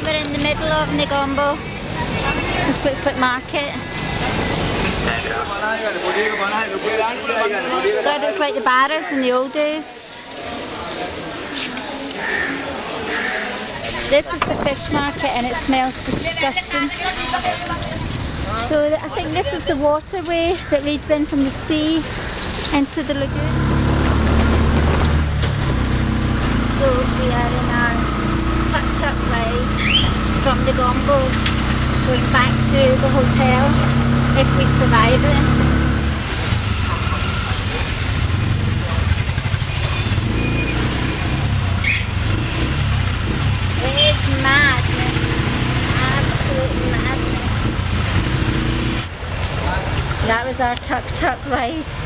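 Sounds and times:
auto-rickshaw engine running: 0:00.0 - 0:05.8, 0:14.0 - 0:52.0
street traffic: 0:00.0 - 0:52.0.

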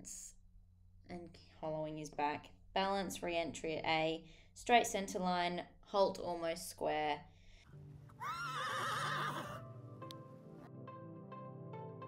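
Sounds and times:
background music: 0:07.6 - 0:12.0
horse whinnying: 0:08.2 - 0:09.6.

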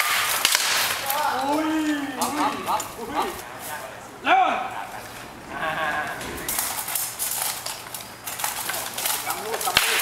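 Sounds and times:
weapons striking with sharp cracks: 0:00.0 - 0:01.4, 0:09.5 - 0:10.0.

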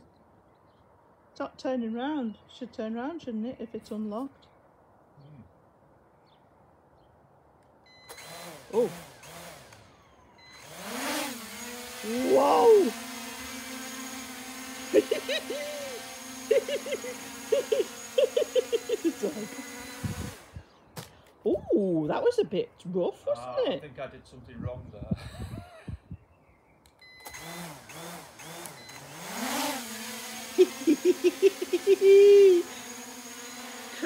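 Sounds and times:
short beep: 0:07.9 - 0:08.2, 0:27.0 - 0:27.4
drone propellers humming: 0:08.1 - 0:20.9, 0:27.2 - 0:34.0.

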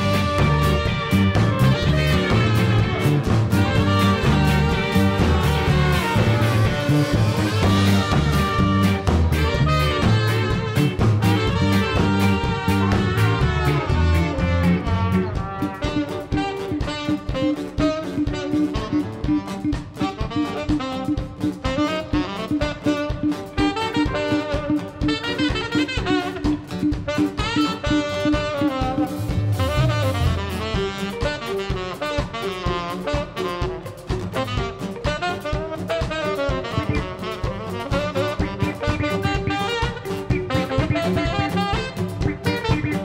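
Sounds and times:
deep bass notes: 0:00.0 - 0:17.1, 0:28.6 - 0:31.4, 0:36.3 - 0:43.0
guitars: 0:00.0 - 0:43.0
steady drum beat: 0:00.0 - 0:43.0
trumpet and saxophone melody: 0:00.0 - 0:43.0.

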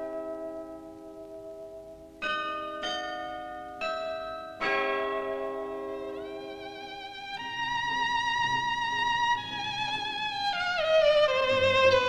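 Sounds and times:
solo violin long notes: 0:05.9 - 0:12.0.

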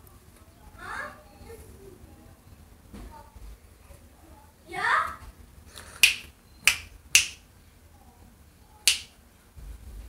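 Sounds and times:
sharp snappy clicks: 0:06.0 - 0:07.4, 0:08.9 - 0:09.1.

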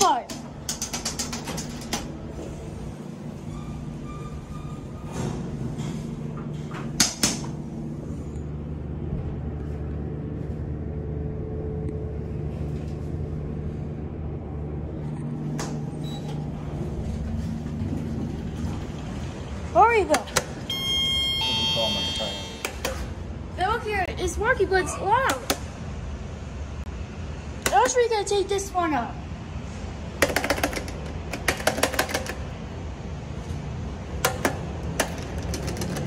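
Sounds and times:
elevator low hum: 0:00.0 - 0:36.0.

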